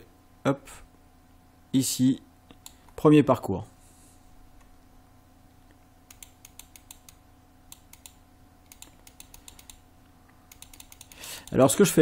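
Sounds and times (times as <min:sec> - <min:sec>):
computer mouse clicks: 0:02.5 - 0:03.0, 0:05.7 - 0:11.7.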